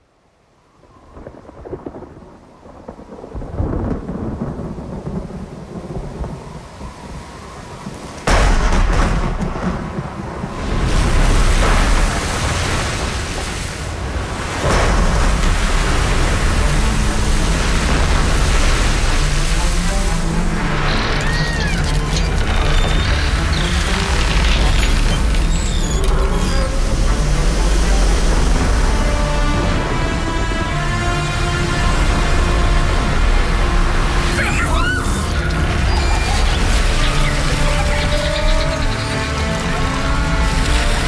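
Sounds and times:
heavy rain: 0.0s - 41.0s
thunder rumbling: 1.1s - 41.0s
loud thunderclaps: 1.2s - 7.0s, 7.8s - 20.3s.

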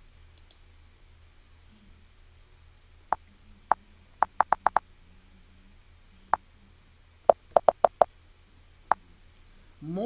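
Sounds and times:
keyboard keystrokes clicking: 4.2s - 4.8s.

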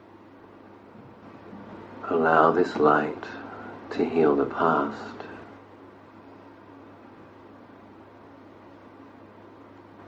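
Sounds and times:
faint steady hiss: 0.0s - 10.0s
low hum: 0.0s - 10.0s.

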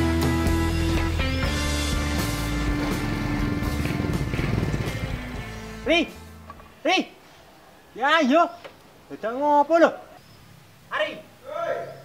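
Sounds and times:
background music with held tones: 0.0s - 6.5s
motorcycle engine pulsing: 2.2s - 5.5s.

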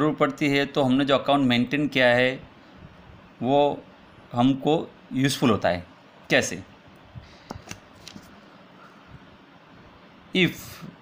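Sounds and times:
pen rustling on paper: 7.3s - 8.4s.

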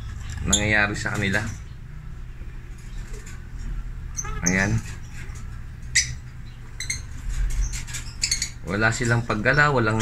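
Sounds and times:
bird chirps: 4.2s - 10.0s.

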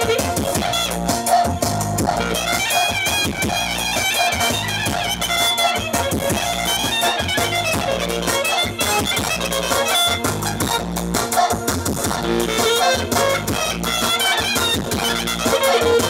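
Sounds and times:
clarinet melody: 0.0s - 1.4s, 2.1s - 11.0s, 12.3s - 16.0s
live band music through speakers: 0.0s - 16.0s
steady bass beat: 0.0s - 16.0s.

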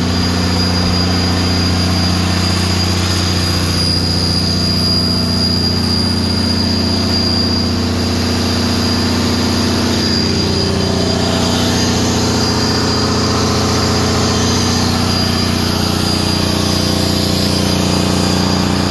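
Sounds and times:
diesel engine running: 0.0s - 18.9s
faint high whine: 0.0s - 18.9s.

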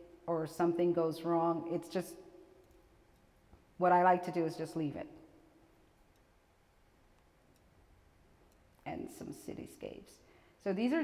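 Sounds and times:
woman speaking: 0.3s - 2.2s, 3.8s - 5.1s, 8.9s - 11.0s.

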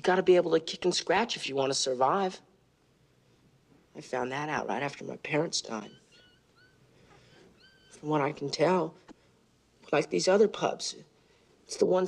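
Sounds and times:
puppy whimpering: 5.8s - 6.8s, 7.6s - 8.0s.

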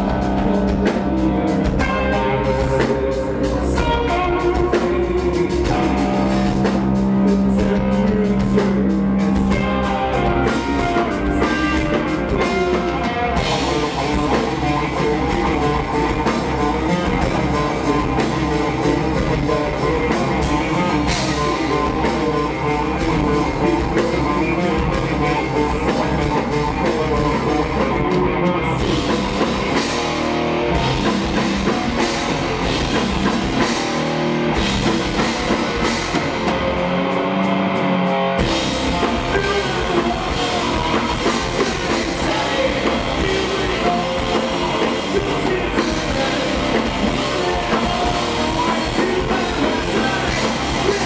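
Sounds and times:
bass guitar: 0.0s - 51.0s
drum kit: 0.0s - 51.0s
electric guitar: 0.0s - 51.0s.

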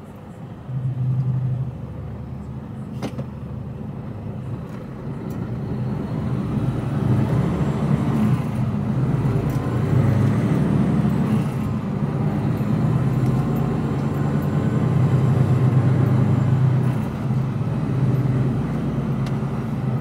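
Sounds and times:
lorry diesel engine: 0.0s - 20.0s.

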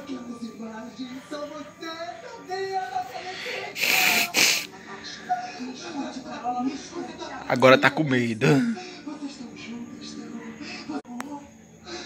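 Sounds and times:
woman speaking through tv speaker: 3.2s - 5.3s
short hissing bursts: 3.6s - 4.7s.

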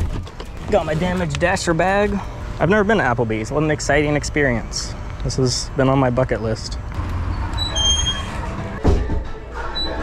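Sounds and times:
background music: 8.3s - 10.0s
door thumping open: 8.8s - 9.3s.

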